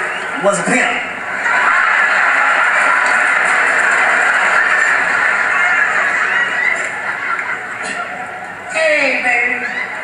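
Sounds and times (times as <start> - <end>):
audience laughing and applauding: 1.1 - 8.7.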